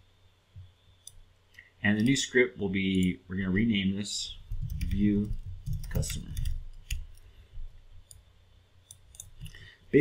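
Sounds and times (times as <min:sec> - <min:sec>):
keyboard and mouse clicks: 0:04.5 - 0:07.3, 0:08.0 - 0:09.7.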